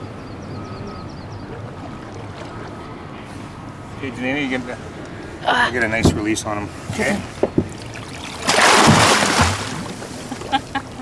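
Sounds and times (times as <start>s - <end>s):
fish splashing at surface: 7.7s - 10.2s.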